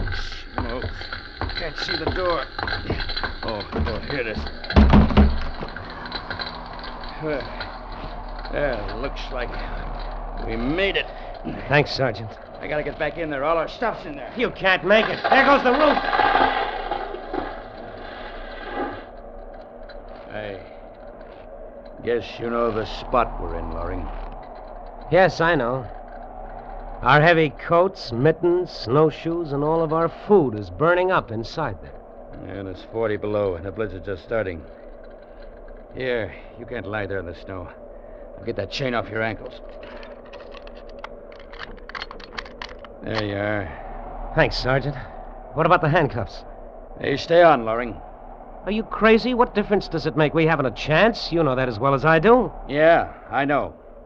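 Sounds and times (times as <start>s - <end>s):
chain clinking: 0.0s - 43.9s
burning roof collapsing with crackling: 0.0s - 48.0s.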